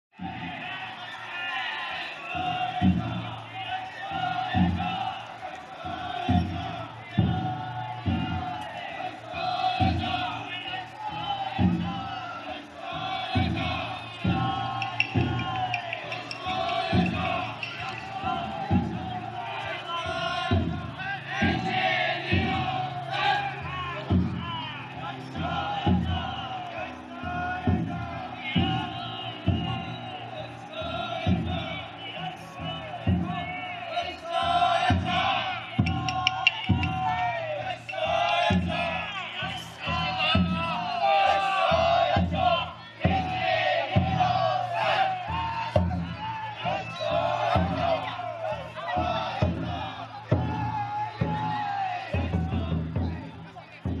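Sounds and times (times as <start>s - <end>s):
people shouting and chanting: 0.2s - 54.0s
big drum beating: 2.3s - 54.0s.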